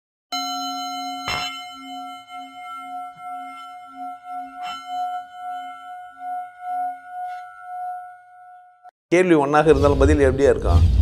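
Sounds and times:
singing bowl ringing: 0:00.3 - 0:08.9.

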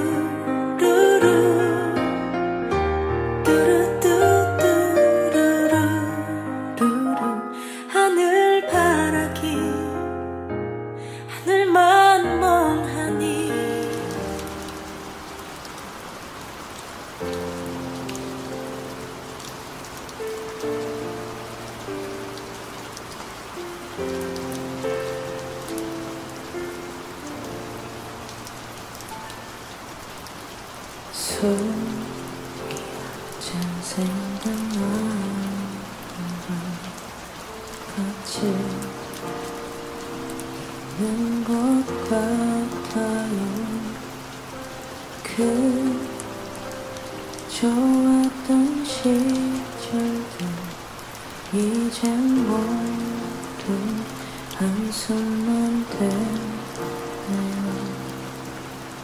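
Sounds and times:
steady rain: 0:00.0 - 0:10.3, 0:10.9 - 0:59.0
slow ballad music: 0:00.0 - 0:59.0.

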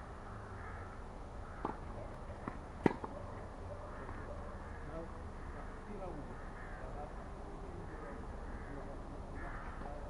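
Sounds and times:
racket hitting tennis ball: 0:01.6 - 0:03.1.

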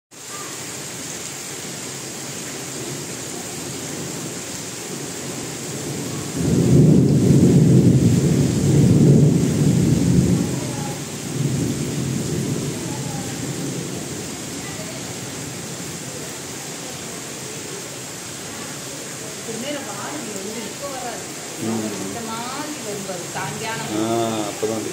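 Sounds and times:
heavy rain falling: 0:00.1 - 0:24.9
thunder rumbling: 0:02.7 - 0:16.1.

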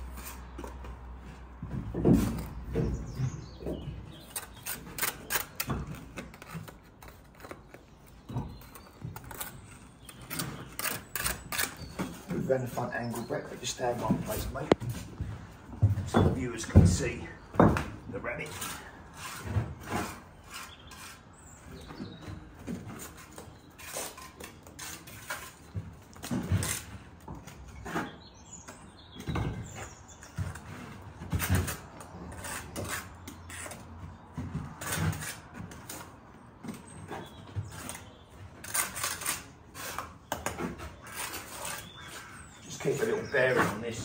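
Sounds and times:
trowel scraping mortar: 0:04.2 - 0:14.7, 0:18.2 - 0:21.6, 0:23.0 - 0:27.0, 0:30.5 - 0:33.9, 0:34.8 - 0:36.1, 0:37.2 - 0:44.0.

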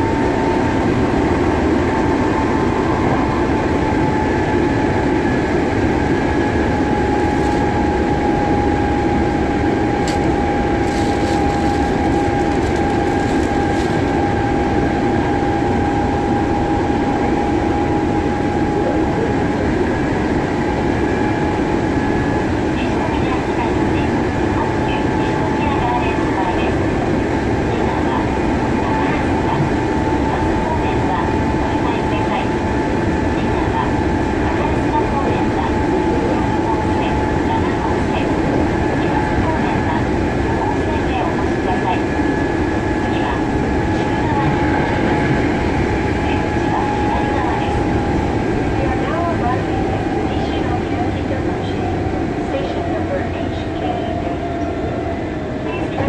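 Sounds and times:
train wheels rumbling: 0:00.0 - 0:18.9, 0:19.7 - 0:56.0.

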